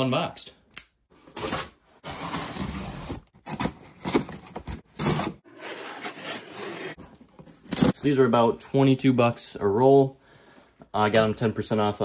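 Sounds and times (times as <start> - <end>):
cardboard scraping and rubbing: 1.3 - 7.9.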